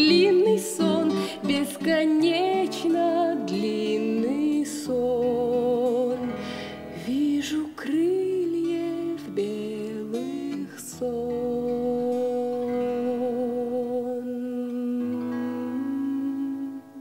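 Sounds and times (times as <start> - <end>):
strummed acoustic guitar: 0.0 - 17.0
woman singing: 0.0 - 17.0.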